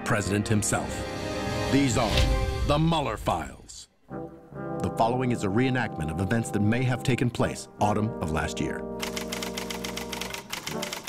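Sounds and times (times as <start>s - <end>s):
typewriter key clacks: 9.0s - 11.0s.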